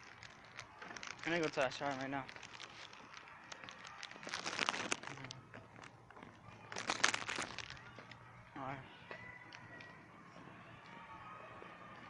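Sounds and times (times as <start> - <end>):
crackly rustling: 0.0 - 8.3.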